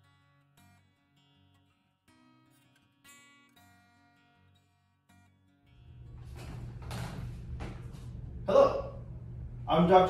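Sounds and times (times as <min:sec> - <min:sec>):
low steady hum: 0:05.8 - 0:10.0.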